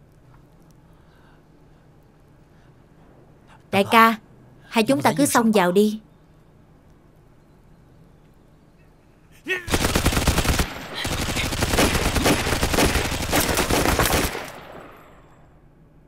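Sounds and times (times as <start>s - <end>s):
rapid gunshots: 9.7s - 15.0s.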